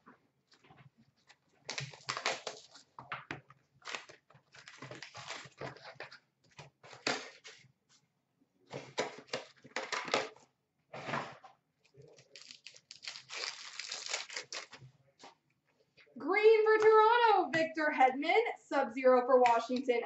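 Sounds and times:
wrappers torn and crinkled: 1.7 - 2.8, 3.8 - 5.9, 12.1 - 14.8
cards shuffled: 12.2 - 14.8.

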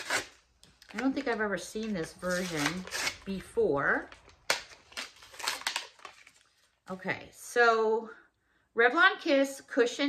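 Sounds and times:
blister packaging tearing: 0.0 - 3.5, 4.1 - 6.7
packaging crinkling: 4.1 - 6.8.

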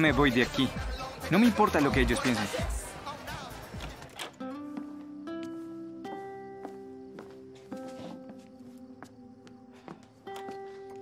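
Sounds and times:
party chatter: 0.0 - 4.3.

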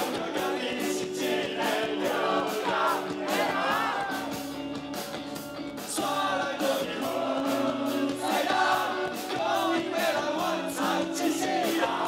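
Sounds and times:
man singing: 0.0 - 3.2, 5.8 - 12.0
live rock band playing: 0.0 - 12.0.

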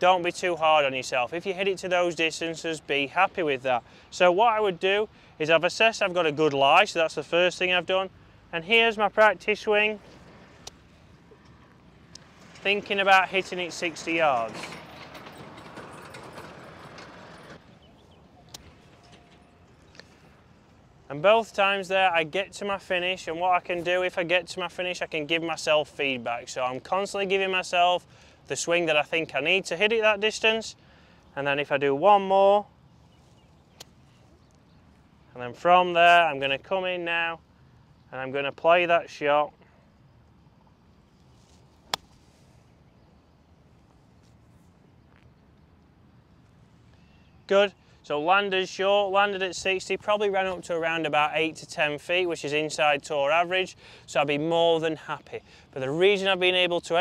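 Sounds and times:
faint outdoor air noise: 0.0 - 57.0
golf club clipping turf: 41.2 - 42.6
golf club striking ball: 41.9 - 42.2.

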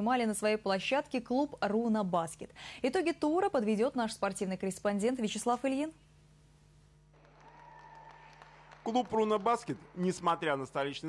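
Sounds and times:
low steady hum: 0.0 - 11.0
sports hall ambience hiss: 5.2 - 11.0.

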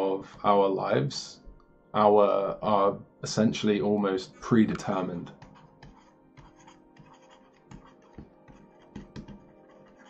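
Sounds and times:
stylus tapping: 4.7 - 10.0
stylus scratching on tablet: 5.3 - 10.0.

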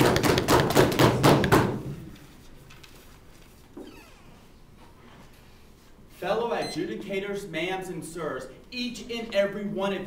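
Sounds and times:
knocking on desks: 0.0 - 2.0.

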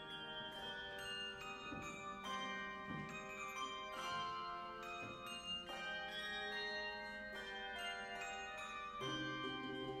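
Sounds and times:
handbell choir ringing chords: 0.0 - 10.0.

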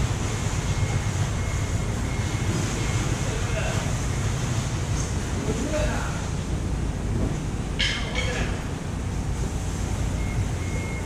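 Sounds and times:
market hall low rumble: 0.0 - 11.0.

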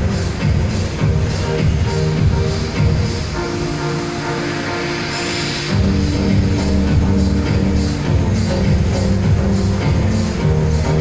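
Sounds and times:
electronic music with heavy beat: 0.0 - 11.0.

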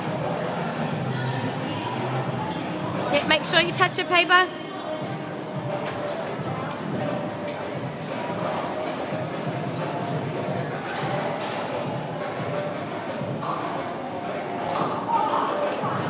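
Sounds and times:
music playing: 0.0 - 16.0.

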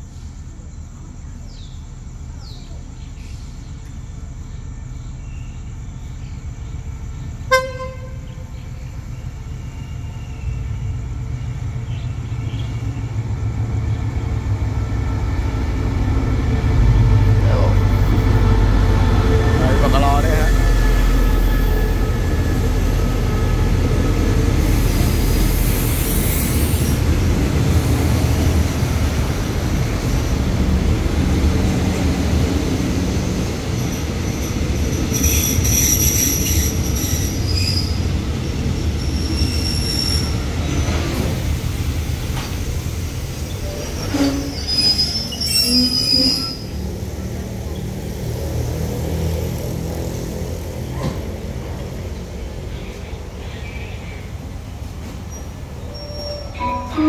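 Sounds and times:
train coaches rumbling past: 0.0 - 57.0
brake wheel squeals: 35.1 - 38.0, 43.6 - 46.8, 55.3 - 57.0.

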